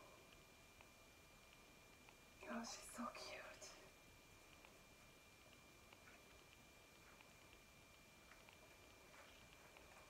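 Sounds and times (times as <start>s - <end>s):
woman whispering: 2.4s - 4.0s.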